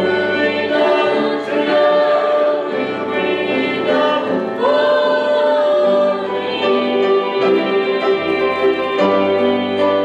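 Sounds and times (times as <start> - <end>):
gospel hymn singing: 0.0 - 10.0
keyboard accompaniment: 0.0 - 10.0.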